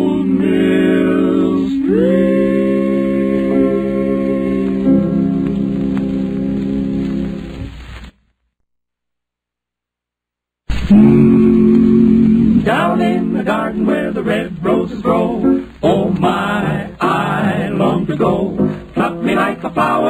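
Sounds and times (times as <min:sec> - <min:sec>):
male vocal quartet singing harmony: 0:00.0 - 0:05.5, 0:10.9 - 0:20.0.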